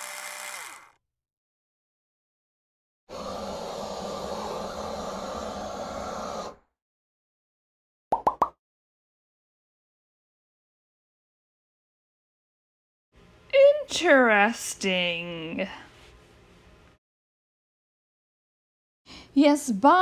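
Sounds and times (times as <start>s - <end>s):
machine-like whirring buzz: 0.0s - 1.0s.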